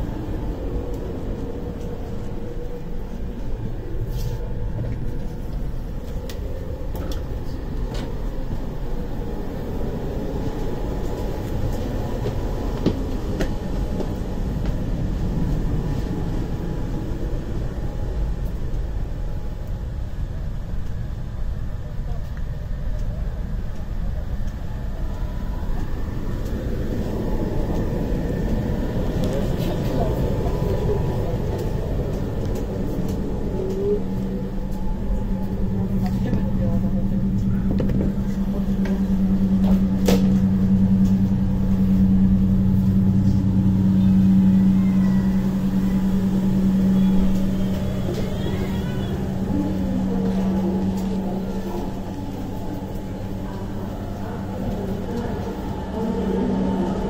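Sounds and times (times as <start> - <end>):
train carriage rumble and hum: 0.0 - 57.0
faint voices: 21.4 - 57.0.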